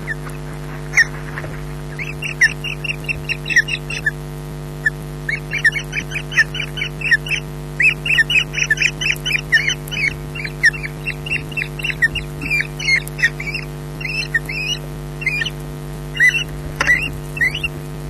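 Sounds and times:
osprey high chirping calls: 0.0s - 4.2s, 4.8s - 17.8s.

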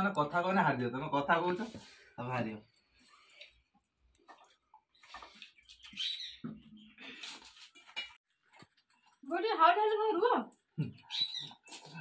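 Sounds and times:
people eating: 2.7s - 9.3s, 10.5s - 12.0s.

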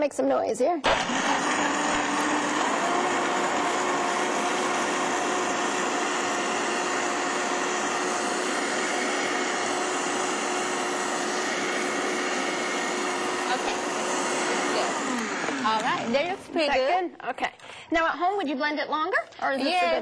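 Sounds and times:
blender motor running: 0.8s - 16.6s.

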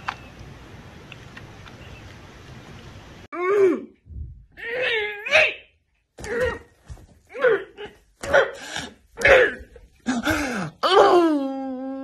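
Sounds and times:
woman groaning: 9.2s - 12.0s.

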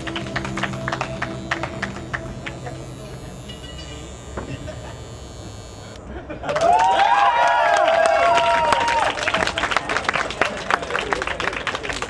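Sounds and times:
electric hair clippers buzzing: 0.0s - 6.1s.

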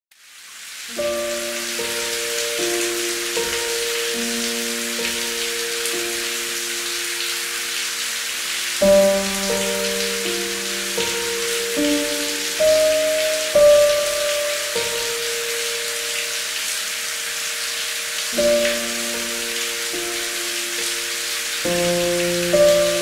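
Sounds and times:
rain on hard surface: 0.1s - 23.0s
slow instrumental music: 0.9s - 23.0s.

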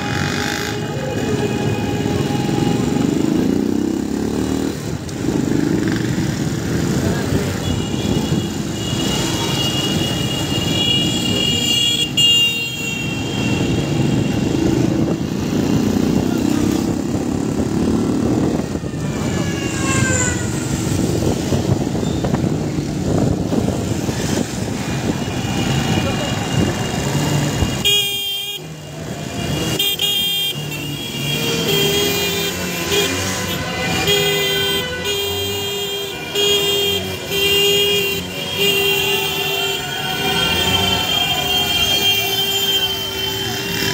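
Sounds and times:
car horns honking: 7.5s - 15.0s, 24.2s - 43.9s.

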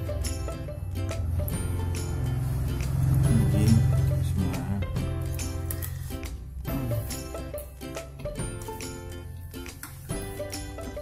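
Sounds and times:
music with heavy bass beat: 0.0s - 9.1s.

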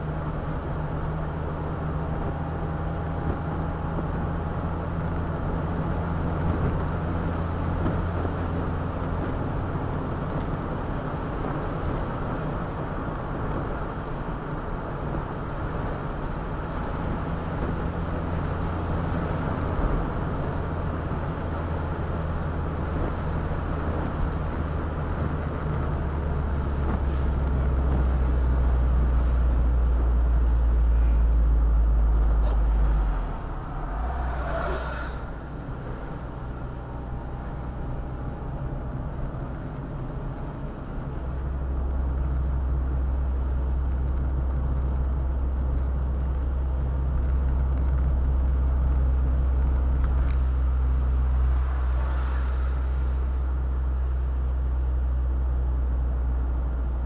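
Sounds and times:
car engine and road drone: 0.0s - 57.0s
brief rushing sound: 32.4s - 36.6s.

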